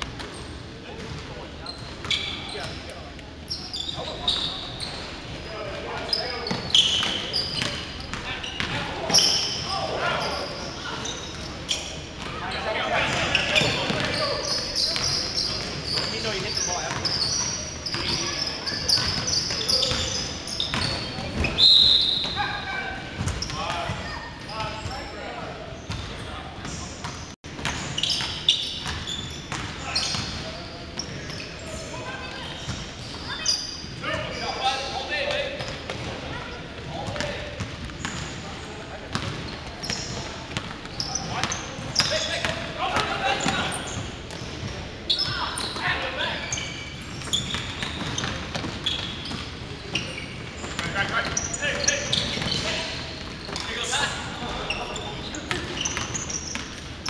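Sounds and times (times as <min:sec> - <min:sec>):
players' indistinct voices: 0:00.0 - 0:57.0
sneakers squeaking: 0:00.0 - 0:57.0.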